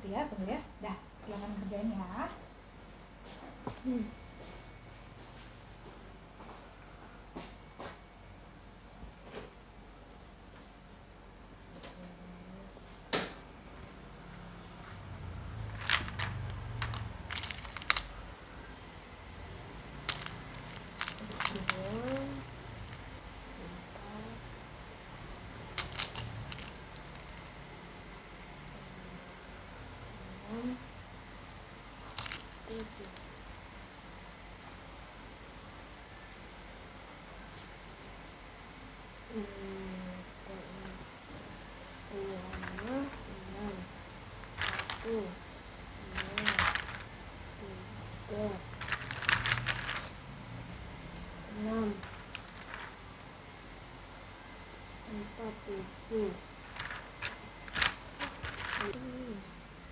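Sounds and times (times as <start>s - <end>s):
beads clacking on wooden tray: 15.6s - 18.2s, 19.9s - 23.1s, 25.7s - 27.5s, 32.1s - 33.3s, 42.4s - 43.3s, 44.4s - 45.3s, 46.0s - 47.1s, 48.6s - 50.2s, 51.9s - 53.0s, 56.6s - 59.2s
clicks of small objects handled: 15.7s - 18.2s, 20.0s - 23.1s, 25.7s - 27.5s, 32.1s - 32.5s, 44.4s - 45.1s, 46.1s - 47.1s, 48.7s - 50.2s, 56.7s - 59.0s
person humming: 58.8s - 59.6s.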